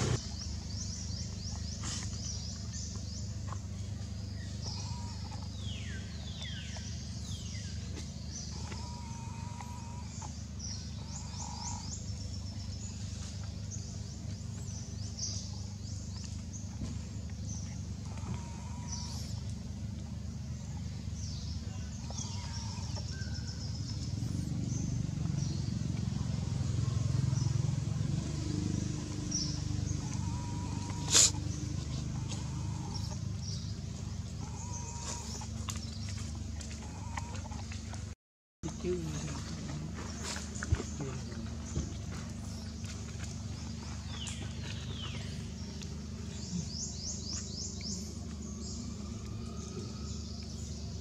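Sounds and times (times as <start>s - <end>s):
steady low hum: 0.0s - 51.0s
steady low rumble: 0.0s - 51.0s.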